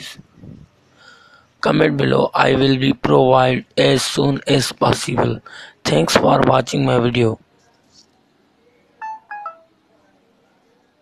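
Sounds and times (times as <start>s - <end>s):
phone electronic beeps: 9.0s - 9.7s.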